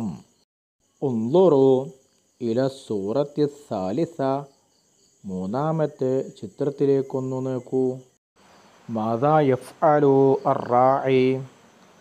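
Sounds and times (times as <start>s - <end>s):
man speaking: 0.0s - 0.2s, 1.0s - 4.5s, 5.2s - 8.1s, 8.9s - 11.5s
faint high-pitched whine: 0.0s - 12.0s.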